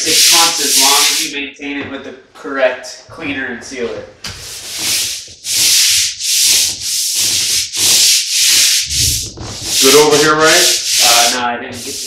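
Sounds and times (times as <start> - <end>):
scrub brush scrubbing tile grout: 0.0 - 1.3, 4.3 - 12.0.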